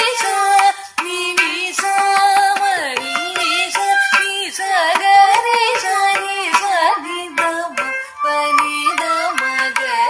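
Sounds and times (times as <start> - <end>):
sharp percussion strokes: 0.0 - 9.7.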